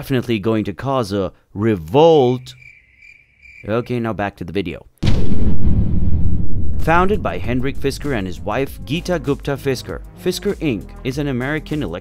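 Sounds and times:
narration: 0:00.0 - 0:02.7, 0:03.6 - 0:04.9, 0:06.8 - 0:12.0
deep rumbling boom: 0:05.0 - 0:09.2.

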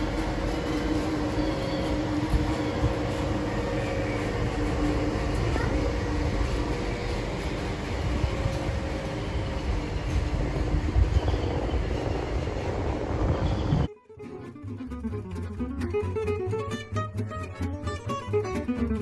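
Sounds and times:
train wheels on rail: 0:00.0 - 0:13.9
acoustic guitar music: 0:13.8 - 0:19.0.

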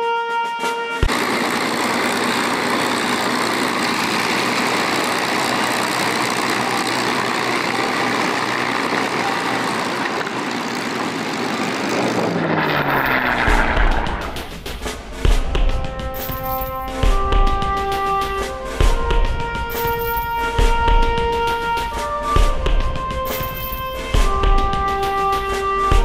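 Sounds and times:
brass-like music: 0:00.0 - 0:01.1, 0:12.7 - 0:26.0
propeller plane engine drone: 0:00.6 - 0:26.0.

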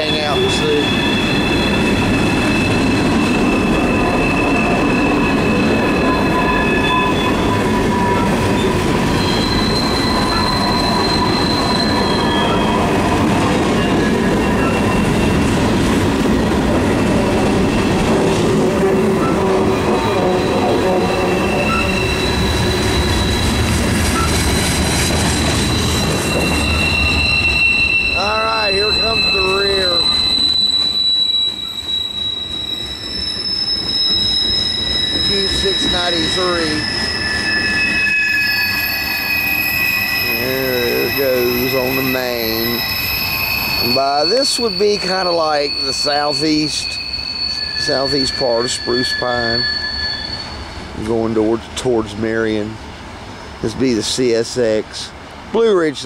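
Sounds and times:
wheel flanges squealing: 0:00.0 - 0:52.7
train wheels rumbling on rails: 0:00.0 - 0:56.0.

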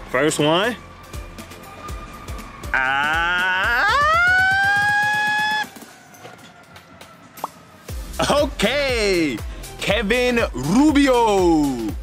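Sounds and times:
man's falsetto yell: 0:02.7 - 0:05.6.

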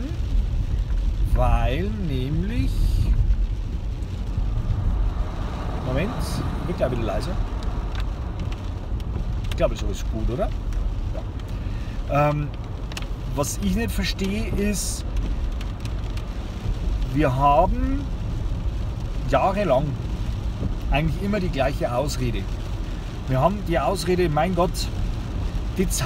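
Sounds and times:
car ventilation fan blowing: 0:00.0 - 0:16.4.

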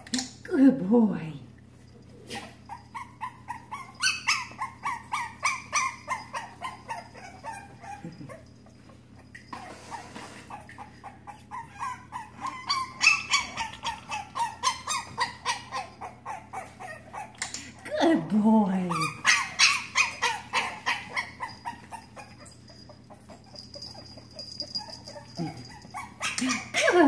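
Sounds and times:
puppy whimpering in high yips: 0:02.3 - 0:08.4, 0:09.3 - 0:17.3, 0:18.9 - 0:27.0.

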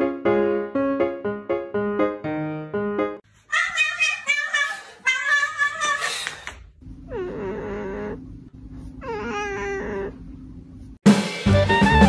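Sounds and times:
light piano music: 0:00.0 - 0:03.2
cat meowing: 0:03.5 - 0:06.2.

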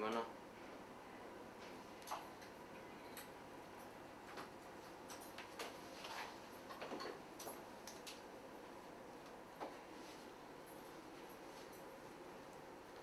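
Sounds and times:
clicks and rustles of hair: 0:04.3 - 0:08.3.

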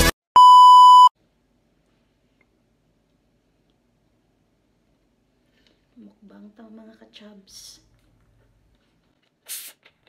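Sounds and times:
steady electronic beep: 0:00.4 - 0:01.1.

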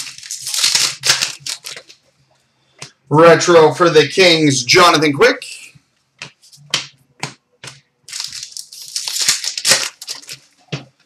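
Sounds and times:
cards rustling: 0:00.0 - 0:02.0, 0:07.6 - 0:10.9.

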